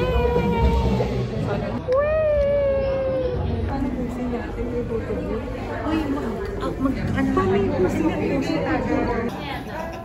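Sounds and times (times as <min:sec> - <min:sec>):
low chatter: 0:00.0 - 0:10.0.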